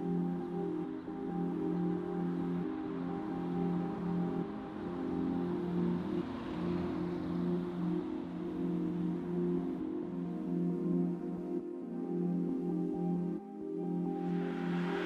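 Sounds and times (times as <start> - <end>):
soft ambient music: 0.0 - 15.0.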